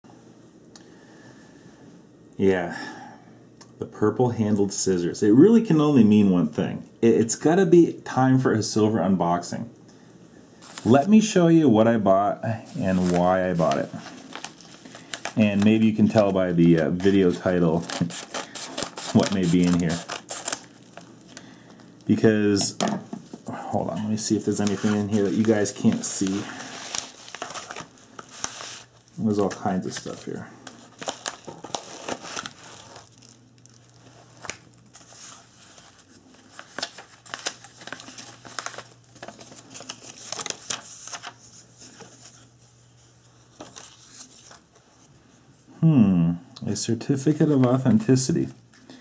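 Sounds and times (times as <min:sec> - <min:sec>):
faint steady hum: 0:00.0 - 0:49.0
paper packaging crinkling: 0:10.6 - 0:11.3, 0:12.6 - 0:22.2, 0:24.0 - 0:42.7, 0:43.4 - 0:44.7.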